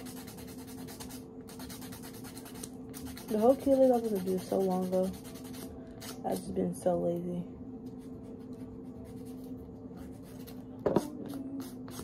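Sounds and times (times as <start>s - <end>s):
nail polish brush scratching nails: 0.0s - 6.2s, 7.9s - 12.0s.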